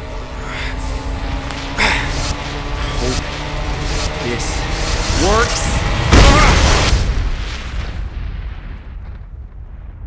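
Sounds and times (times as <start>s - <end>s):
man shouting: 6.1s - 6.7s.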